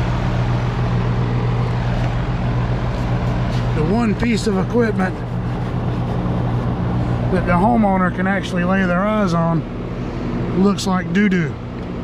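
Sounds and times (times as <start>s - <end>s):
compressor hum: 0.0s - 12.0s
condenser fan rushing: 0.0s - 12.0s.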